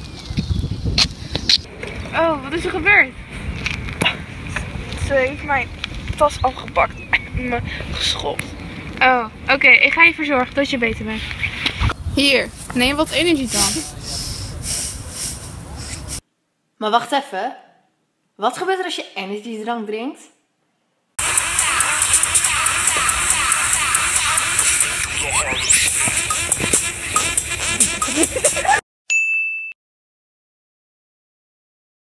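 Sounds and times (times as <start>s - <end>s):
wind buffeting microphone: 0.0s - 16.2s
bell-like ding: 29.1s - 29.8s.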